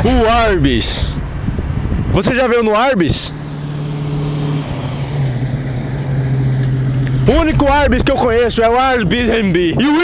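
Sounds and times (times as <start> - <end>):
vehicle driving past: 3.2 - 8.5.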